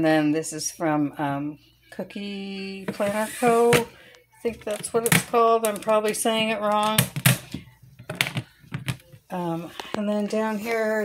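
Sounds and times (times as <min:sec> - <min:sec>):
clicks and taps of hard plastic: 0:04.6 - 0:09.0.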